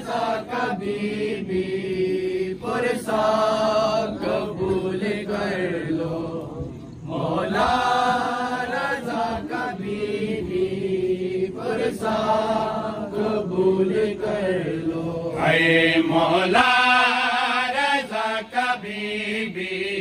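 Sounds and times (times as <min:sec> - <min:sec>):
men chanting a lament: 0:00.0 - 0:20.0.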